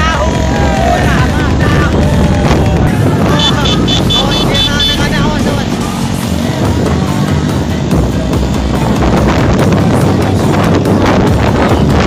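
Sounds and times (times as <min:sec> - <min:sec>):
motorcycle engines running: 0:00.0 - 0:12.0
music: 0:00.0 - 0:12.0
pulsing high-pitched melodic tone: 0:03.3 - 0:06.2.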